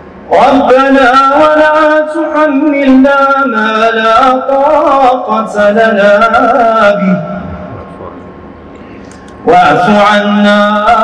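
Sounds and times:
man reciting over loudspeaker: 0:00.2 - 0:08.3, 0:09.0 - 0:11.0.

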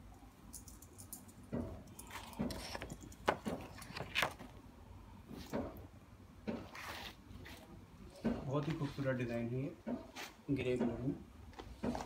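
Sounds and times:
fabric and plastic rustling: 0:02.0 - 0:04.7, 0:06.5 - 0:09.4.

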